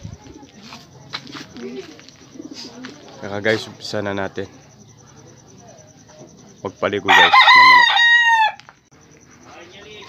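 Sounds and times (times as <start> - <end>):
bird cooing: 1.1 - 3.8.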